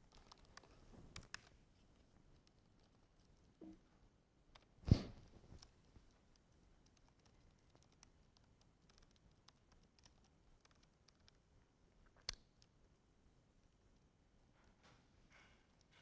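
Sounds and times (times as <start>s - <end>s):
computer keyboard typing: 6.4s - 11.4s.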